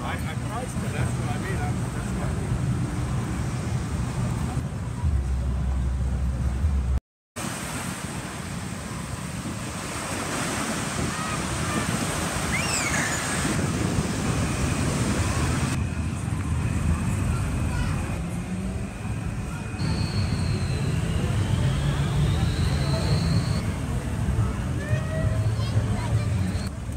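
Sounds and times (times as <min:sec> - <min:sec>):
street traffic: 0:00.0 - 0:07.0, 0:07.6 - 0:26.9
wind rumbling on microphone: 0:02.0 - 0:18.2
surf washing onto beach: 0:07.4 - 0:15.8
thin high whine: 0:14.2 - 0:24.6.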